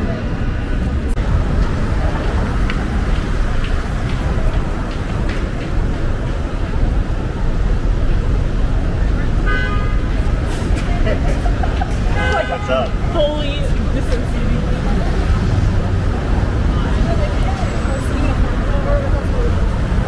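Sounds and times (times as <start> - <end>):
city street traffic: 0.0 - 20.0
vehicle horn: 9.4 - 10.1, 12.1 - 13.0.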